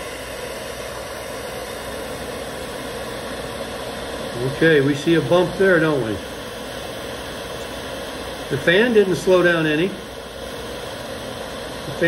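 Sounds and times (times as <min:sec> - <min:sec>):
hair dryer running: 0:00.0 - 0:12.0.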